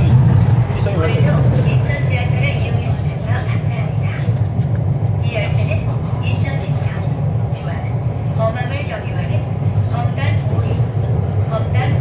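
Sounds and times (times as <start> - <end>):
train rumbling on track: 0.0 - 12.0.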